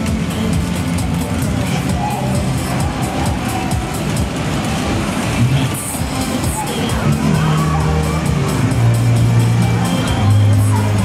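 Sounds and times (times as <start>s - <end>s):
loud music from sound system: 0.0s - 11.0s
deep bass notes: 7.0s - 11.0s.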